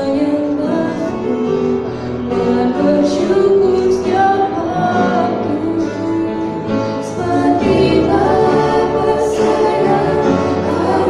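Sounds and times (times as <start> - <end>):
girls singing a hymn in harmony: 2.2 - 11.0.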